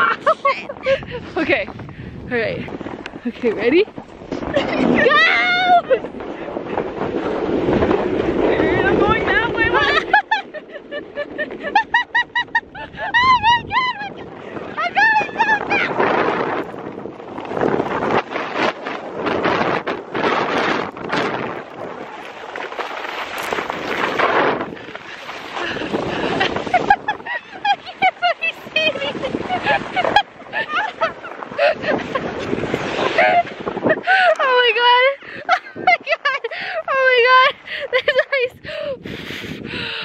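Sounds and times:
woman laughing and gasping: 0.0s - 1.4s, 12.7s - 13.8s, 25.4s - 32.3s, 33.0s - 34.5s, 35.2s - 40.0s
sled rushing over snow: 0.0s - 40.0s
wind buffeting microphone: 0.0s - 40.0s.

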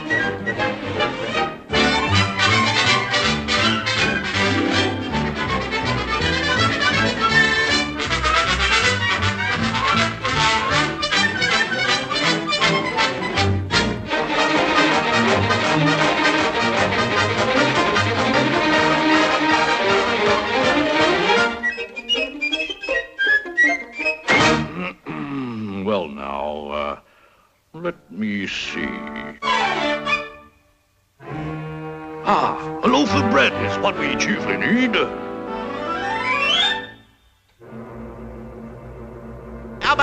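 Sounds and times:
orchestral music with brass: 0.0s - 22.8s, 23.4s - 24.8s, 29.4s - 30.5s, 31.2s - 37.0s, 37.6s - 40.0s.

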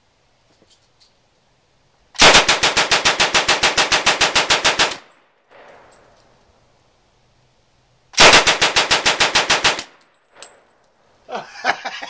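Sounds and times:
submachine gun full-auto burst: 2.2s - 5.0s, 8.2s - 9.9s.

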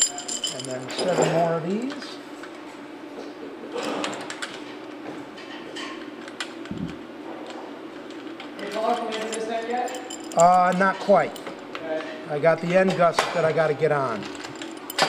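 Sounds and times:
steady room hum: 0.0s - 15.0s.

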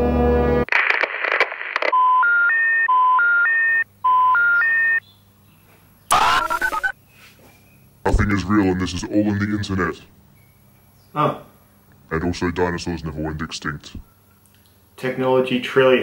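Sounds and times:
burst of noise: 0.7s - 1.9s
telephone intercept tone: 1.9s - 5.0s, 6.1s - 6.9s.

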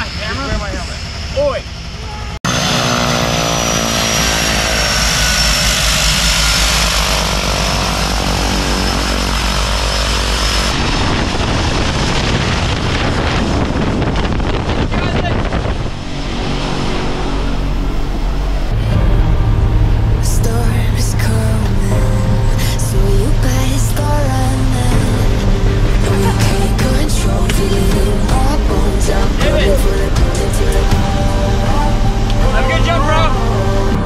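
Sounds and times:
turboprop plane engines running: 0.0s - 34.0s.

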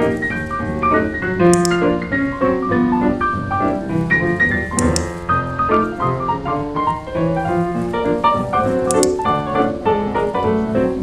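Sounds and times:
ragtime piano music: 0.0s - 11.0s.

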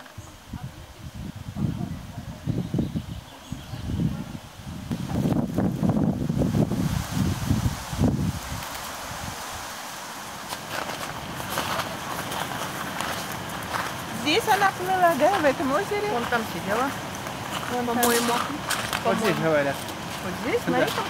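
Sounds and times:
footsteps on wooden steps: 10.4s - 21.0s.

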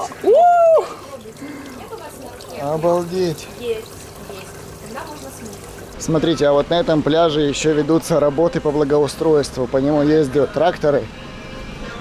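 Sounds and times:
water trickling and splashing: 0.0s - 10.5s.

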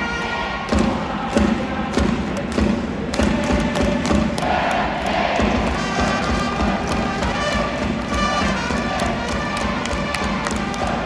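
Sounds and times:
hand claps: 0.7s - 11.0s
steady drum beat: 0.7s - 11.0s
trumpet notes: 5.7s - 11.0s.

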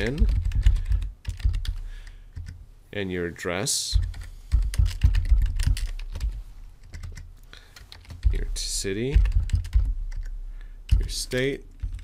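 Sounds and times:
keyboard typing: 0.0s - 2.6s, 3.9s - 12.0s.

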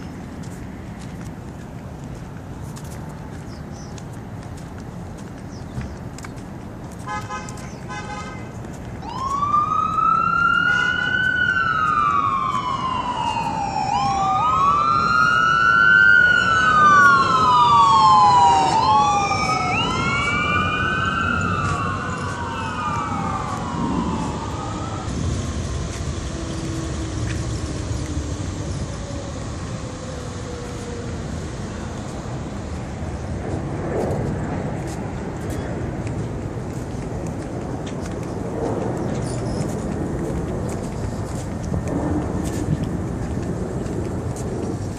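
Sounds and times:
street traffic hum: 0.0s - 44.9s
emergency siren wailing: 8.9s - 34.9s
rapid siren pulses: 9.0s - 33.0s.

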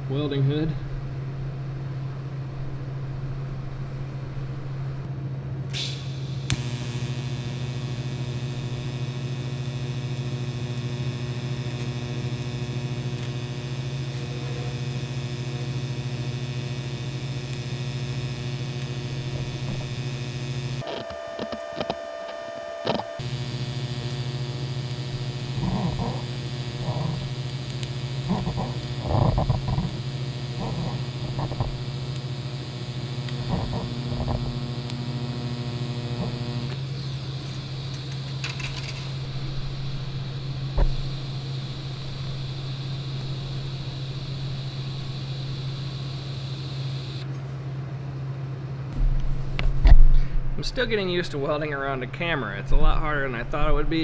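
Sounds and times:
welding arc buzzing: 5.7s - 47.4s, 48.9s - 54.0s.

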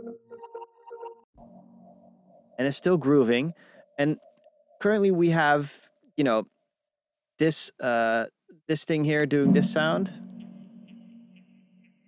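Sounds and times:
synthesizer low tone: 9.4s - 12.0s.

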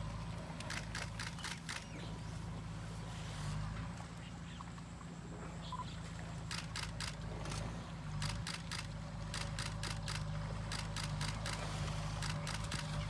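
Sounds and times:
steady low hum: 0.0s - 13.0s
camera shutters clicking: 0.6s - 1.9s, 6.5s - 7.6s, 8.2s - 13.0s.

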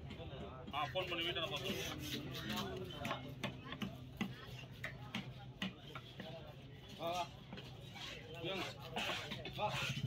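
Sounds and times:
knife chopping fish on wood: 1.9s - 6.3s.

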